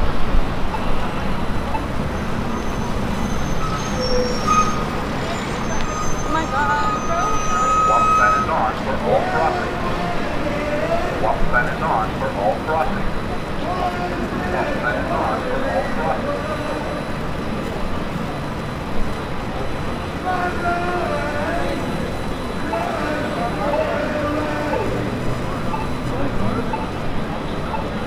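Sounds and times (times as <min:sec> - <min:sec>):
pedestrians' voices: 0:00.0 - 0:28.0
traffic rumble: 0:00.0 - 0:28.0
high tone: 0:05.8 - 0:09.6.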